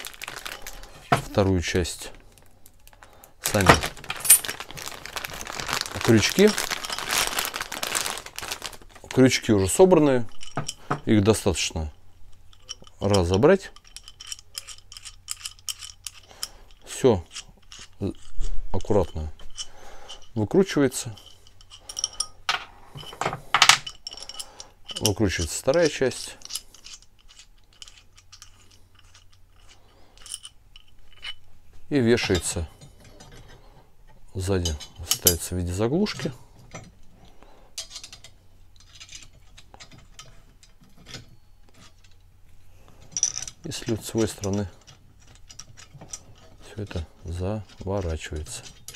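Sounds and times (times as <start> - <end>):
small metal clicks and ticks: 12.3 - 31.5, 34.6 - 42.3, 43.1 - 48.9.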